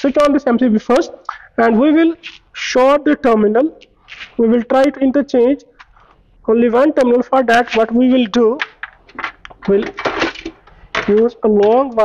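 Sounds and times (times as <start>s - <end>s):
wire leads clinking and rustling: 7.6s - 12.0s.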